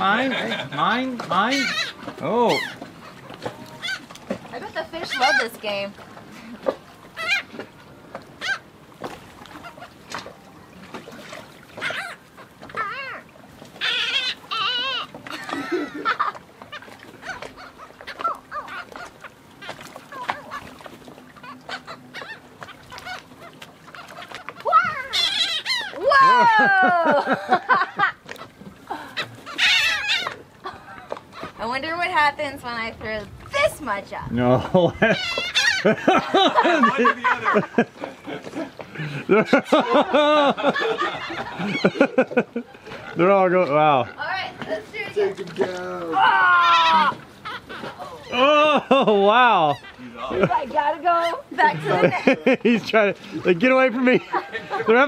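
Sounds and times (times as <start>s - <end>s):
gulls calling and squawking: 0.0s - 8.7s, 9.4s - 55.0s.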